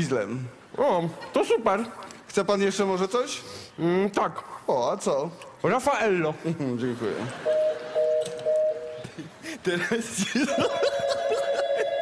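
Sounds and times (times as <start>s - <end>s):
audience laughing: 9.0s - 12.0s
electronic telephone ring: 10.9s - 12.0s.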